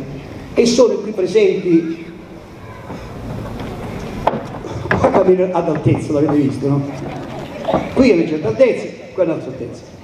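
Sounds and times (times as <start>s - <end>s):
sharp knocks: 2.8s - 6.6s
footsteps on wooden floor: 2.8s - 8.0s.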